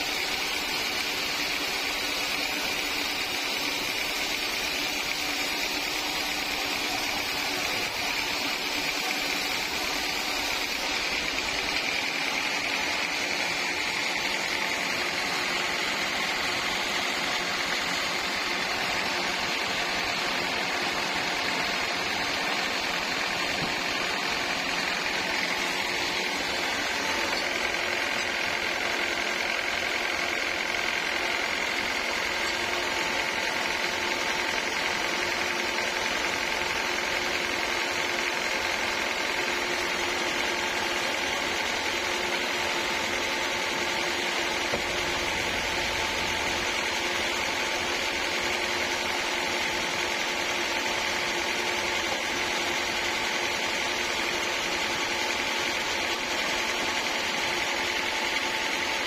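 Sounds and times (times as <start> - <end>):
band sawmill droning: 0.0 - 59.0.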